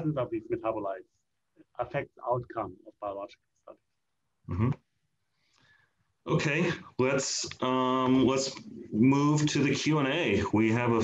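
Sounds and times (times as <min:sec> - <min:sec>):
man saying mm-hmm: 0:04.5 - 0:04.8.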